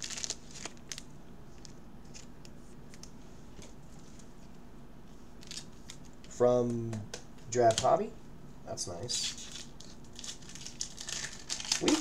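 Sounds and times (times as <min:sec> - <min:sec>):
card packs crinkling: 0:00.0 - 0:02.3, 0:09.2 - 0:12.0.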